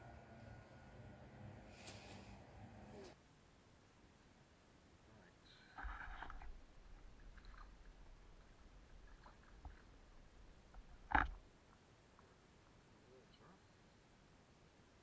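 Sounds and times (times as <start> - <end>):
faint handling noise: 5.7 - 12.4
low rumble: 5.8 - 11.5.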